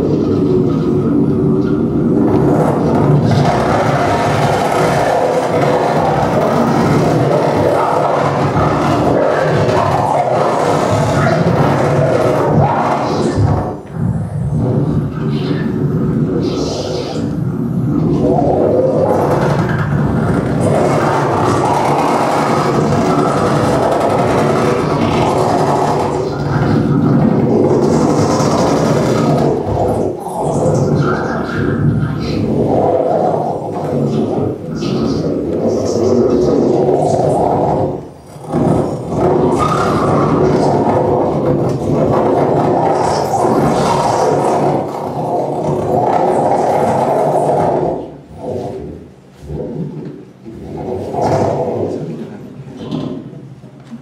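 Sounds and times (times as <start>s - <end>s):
noisy experimental electronic music: 0.0s - 54.0s.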